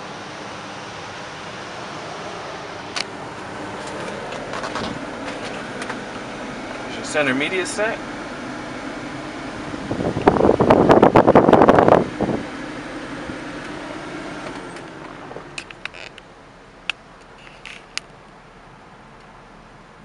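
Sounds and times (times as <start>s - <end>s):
ventilation fan hum: 0.0s - 18.0s.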